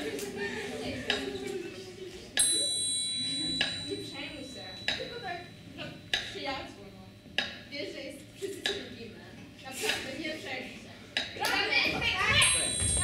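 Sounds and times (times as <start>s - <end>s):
quiet voices: 0.0s - 6.0s
bell-like metallic ring: 2.4s - 5.6s, 12.4s - 13.0s.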